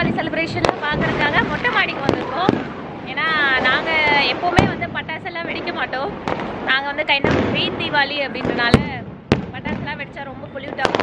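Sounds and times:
firecracker bangs: 0:00.0 - 0:11.0.

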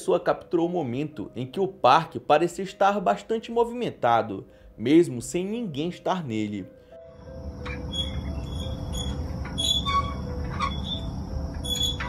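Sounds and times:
metal swings squeaking: 0:07.6 - 0:12.0.

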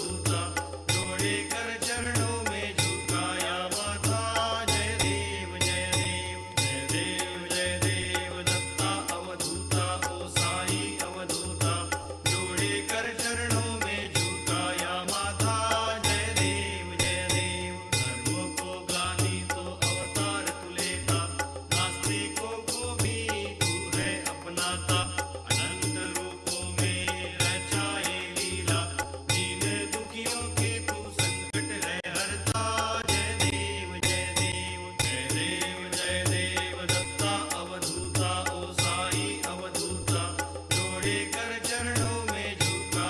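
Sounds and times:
chant-like singing: 0:00.0 - 0:43.0
percussion strikes: 0:00.0 - 0:43.0
steady ringing tone: 0:00.0 - 0:43.0.

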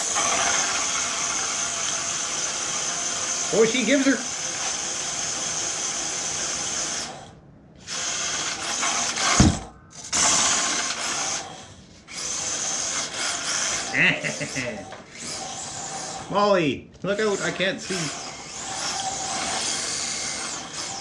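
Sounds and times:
rc car electric motor whining: 0:00.0 - 0:16.5, 0:17.1 - 0:21.0
thump: 0:09.3 - 0:09.7.

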